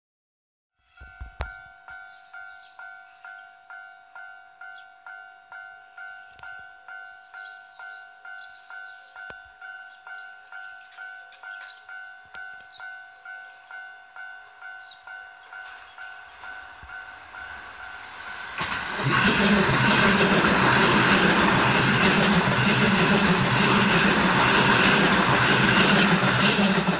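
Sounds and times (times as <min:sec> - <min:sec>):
level crossing warning bell: 0:00.8 - 0:26.9.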